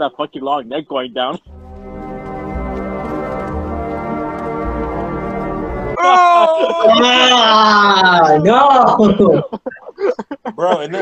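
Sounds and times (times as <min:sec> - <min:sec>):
low horn-like tone: 0:01.4 - 0:06.0
low rumble: 0:01.4 - 0:06.0
loud laughter: 0:06.0 - 0:11.0.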